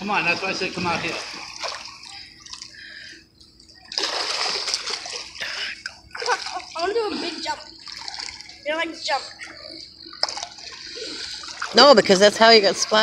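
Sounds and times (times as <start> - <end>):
voices speaking: 0.0 - 4.0, 5.2 - 13.0
pool water splashing: 0.0 - 13.0.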